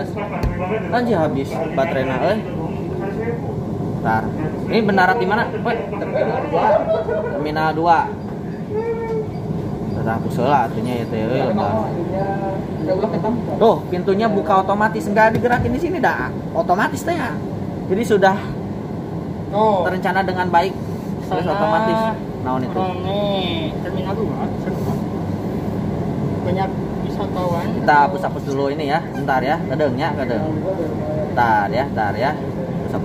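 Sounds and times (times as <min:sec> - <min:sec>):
train car hum: 0:00.0 - 0:33.0.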